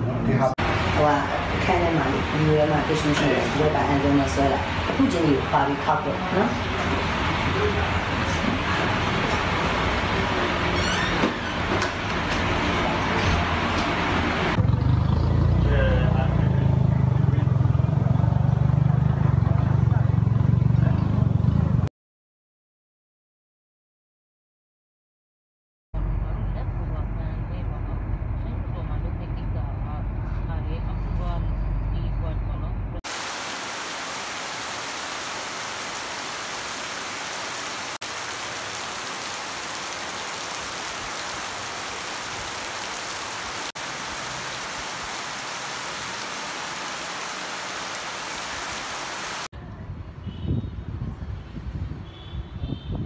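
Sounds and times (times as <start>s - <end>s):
road noise inside vehicle: 0.0s - 21.9s, 26.0s - 33.0s
heavy rain falling: 0.6s - 14.6s, 33.1s - 49.5s.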